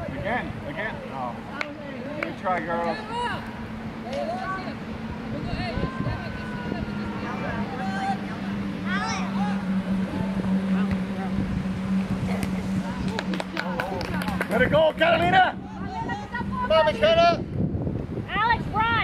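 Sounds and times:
distant voices and calls: 0.0s - 16.9s
low motor hum: 0.0s - 19.0s.

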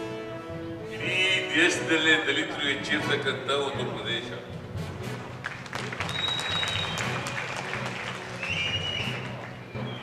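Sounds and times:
background music: 0.0s - 10.0s
audience applauding: 5.1s - 10.0s.

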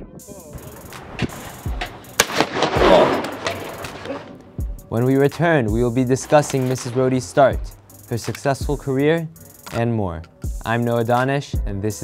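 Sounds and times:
shotgun shots echoing: 0.6s - 4.7s, 6.2s - 7.9s.

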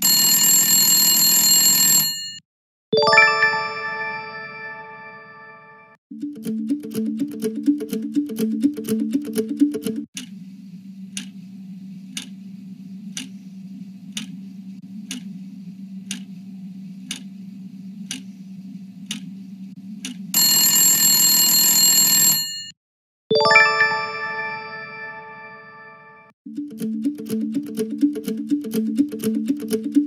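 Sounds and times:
ringing chime: 3.0s - 5.8s, 23.4s - 26.2s
clock ticking: 6.1s - 10.3s, 15.1s - 15.3s, 16.1s - 16.3s, 17.1s - 17.3s, 19.1s - 19.3s, 20.0s - 20.2s, 26.5s - 30.0s.

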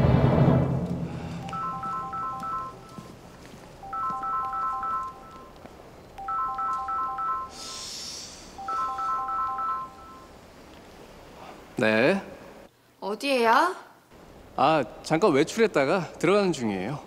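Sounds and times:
smartphone ringtone: 1.4s - 3.2s, 3.8s - 5.6s, 6.2s - 7.8s, 8.6s - 10.3s
soft hiss: 7.5s - 8.9s.

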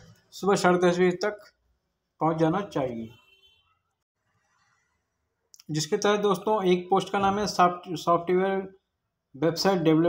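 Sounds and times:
man speaking: 0.4s - 1.5s, 2.2s - 3.1s, 5.6s - 8.7s, 9.4s - 10.0s.

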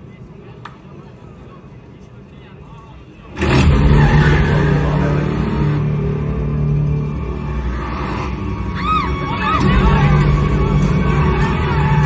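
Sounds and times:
noisy low drone: 3.3s - 12.0s.

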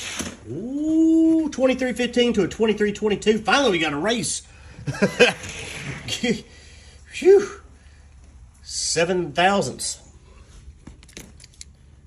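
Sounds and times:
low steady hum: 0.4s - 12.0s.

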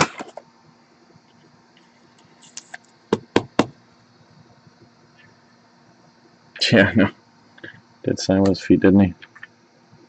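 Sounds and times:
sharp knocks on plastic case: 3.1s - 3.8s.

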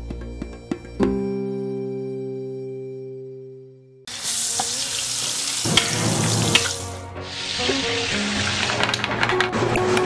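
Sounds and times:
background music: 0.0s - 10.0s
food sizzling: 4.1s - 9.0s.

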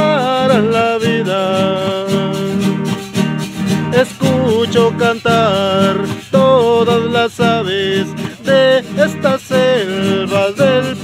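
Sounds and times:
acoustic guitar strumming: 0.0s - 11.0s
sliding melody: 0.0s - 11.0s.

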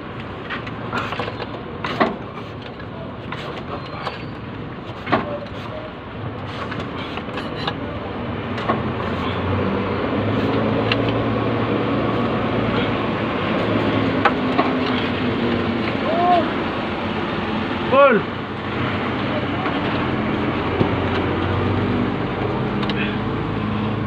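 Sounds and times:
motor vehicle rumble: 0.0s - 24.0s.

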